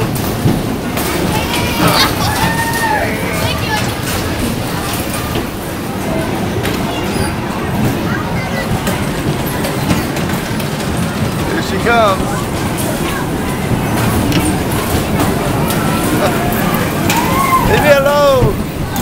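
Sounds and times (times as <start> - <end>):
bumper cars din: 0.0 - 19.0.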